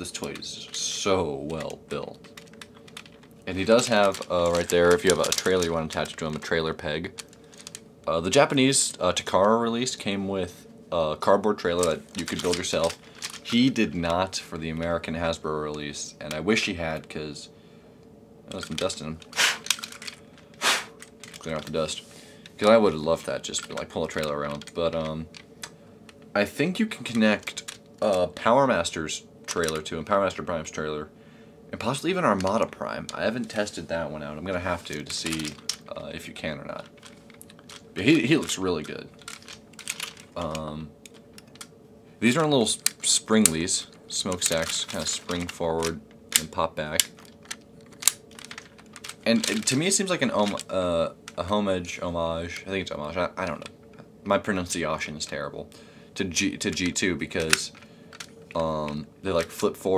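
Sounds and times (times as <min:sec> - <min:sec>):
breath puffs blown on toy: 0:19.4 - 0:19.7, 0:20.6 - 0:21.0
toy parts snapping with clicks: 0:19.4 - 0:20.2, 0:39.2 - 0:41.7, 0:44.3 - 0:49.8.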